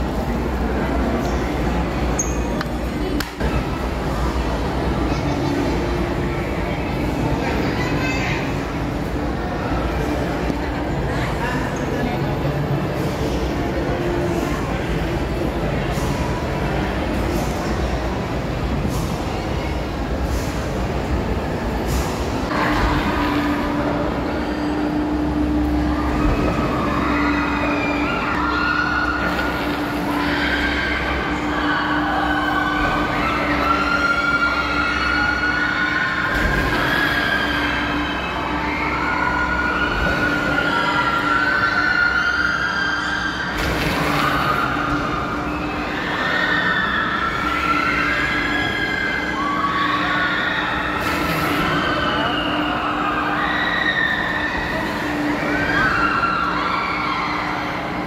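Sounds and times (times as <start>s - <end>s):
wavering high squeals: 22.6s - 58.0s.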